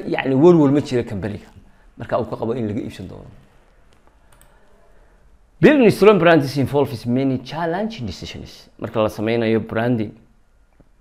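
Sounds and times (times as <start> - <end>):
faint computer clicks: 3.9 - 4.7.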